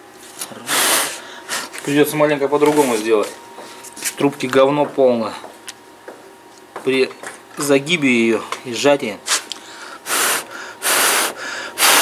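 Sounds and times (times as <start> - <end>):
person exhaling through the nose: 9.7 - 12.0.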